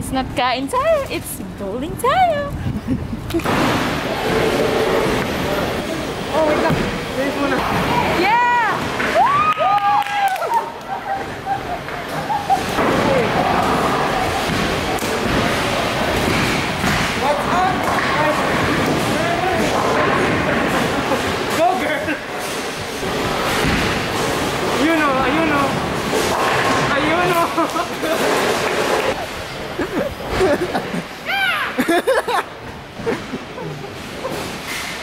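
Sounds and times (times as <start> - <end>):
noisy background: 0.0 - 35.0
people talking and calling out: 10.2 - 22.4
bowling balls and pins thudding: 11.2 - 21.6.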